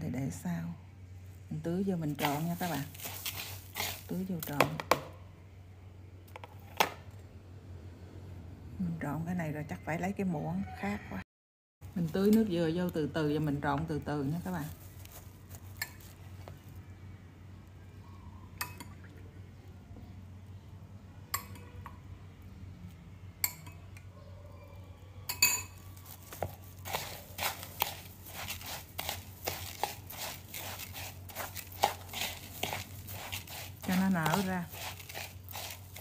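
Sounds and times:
metal spoon scraping a bowl: 0:02.2 - 0:04.1, 0:25.3 - 0:36.0.

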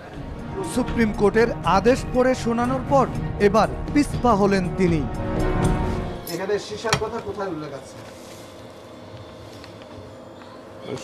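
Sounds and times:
room hum: 0:05.2 - 0:11.0.

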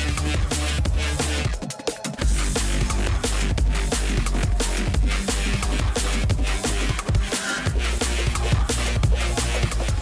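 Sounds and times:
drum and bass music: 0:00.0 - 0:10.0.

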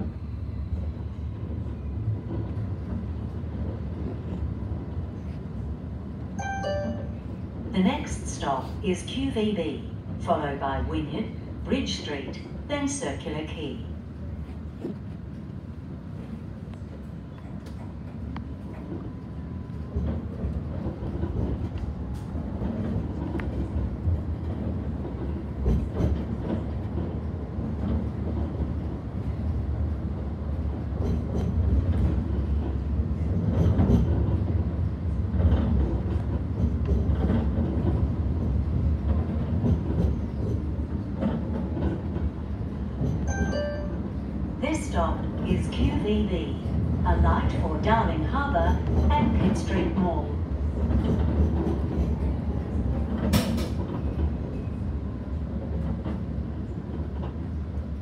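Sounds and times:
tram wheels rumbling on rail: 0:00.0 - 0:58.0.

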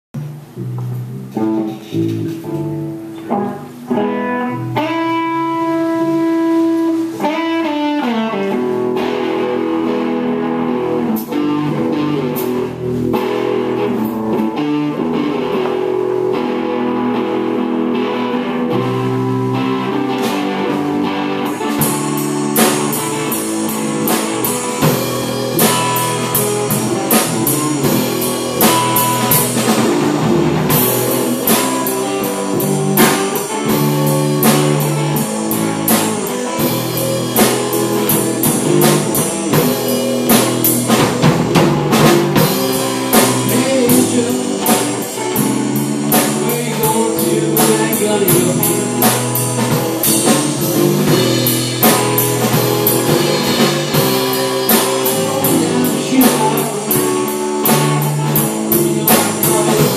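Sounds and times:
drum kit with cymbal hits: 0:00.2 - 0:59.9
guitar and bass sustained notes: 0:00.2 - 0:59.9.

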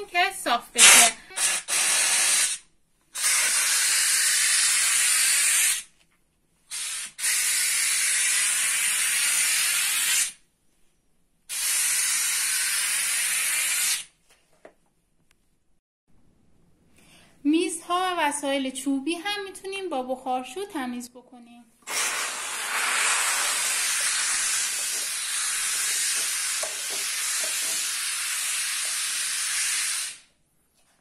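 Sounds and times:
steam cleaner hissing: 0:00.8 - 0:02.6, 0:03.2 - 0:05.9, 0:06.7 - 0:10.4, 0:11.5 - 0:14.0, 0:21.8 - 0:30.3.

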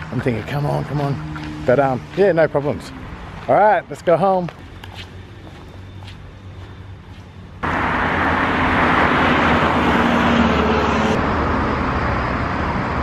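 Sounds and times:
road vehicle rushing: 0:00.0 - 0:04.0, 0:04.6 - 0:13.0.

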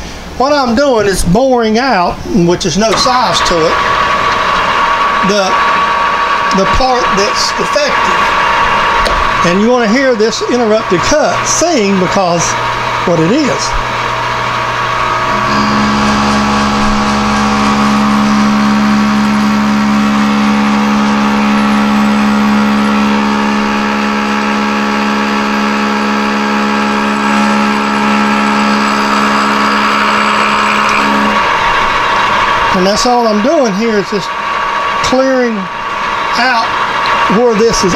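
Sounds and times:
boring tool singing hum: 0:00.6 - 0:37.9
lathe running: 0:01.9 - 0:37.9.

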